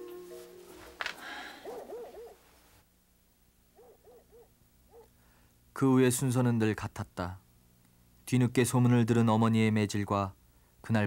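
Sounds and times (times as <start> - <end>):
owl hooting: 0.0 - 2.6
soft hiss: 0.0 - 11.0.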